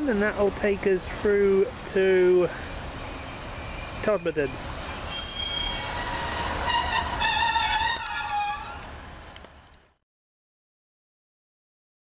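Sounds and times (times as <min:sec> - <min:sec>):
train arriving: 0:01.6 - 0:09.7
wavering high-pitched squeal: 0:03.0 - 0:09.2.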